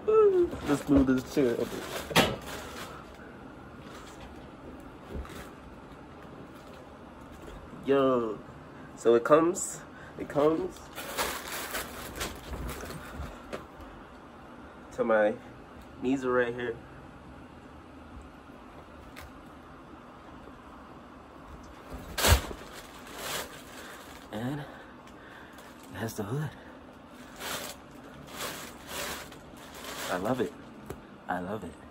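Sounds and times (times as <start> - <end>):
low room noise: 0.0 - 31.9
fabric rustling against microphone: 27.2 - 30.5.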